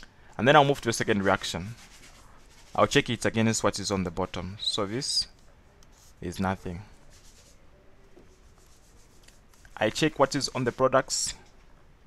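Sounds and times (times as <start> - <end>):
stylus scratching on drawing tablet: 1.0 - 5.0, 5.9 - 7.6, 8.3 - 11.2.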